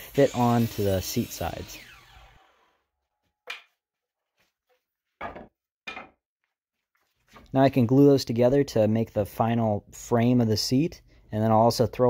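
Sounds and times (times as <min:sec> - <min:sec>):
wooden knocks of lumber set down: 0:05.2 - 0:06.2.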